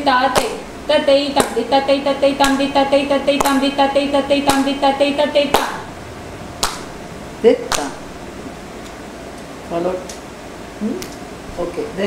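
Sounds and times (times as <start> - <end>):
person chanting rhythm syllables: 0.0 - 8.2
sharp hand claps: 0.3 - 0.6, 2.4 - 2.6, 3.4 - 3.6, 4.5 - 4.7, 5.5 - 5.8, 6.6 - 6.9, 7.7 - 8.0.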